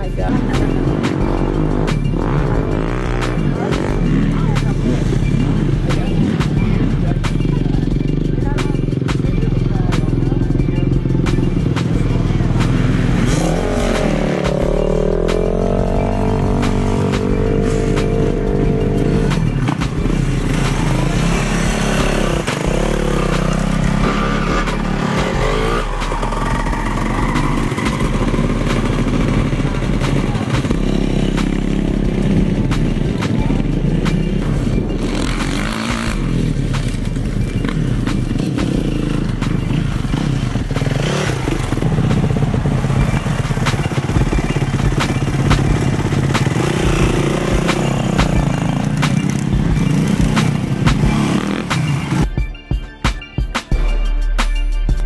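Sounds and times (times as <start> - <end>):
dirt bike engines revving: 0.0 - 52.5.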